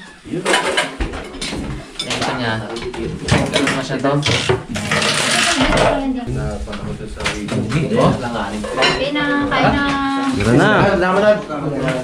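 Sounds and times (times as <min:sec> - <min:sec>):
people talking and calling out: 0:01.7 - 0:12.0.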